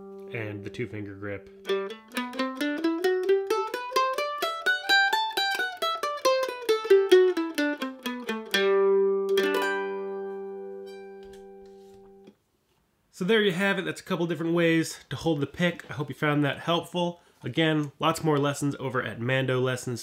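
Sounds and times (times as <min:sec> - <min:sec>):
mandolin picking a scale: 0:00.0 - 0:12.3
mandolin strummed chord: 0:01.5 - 0:12.1.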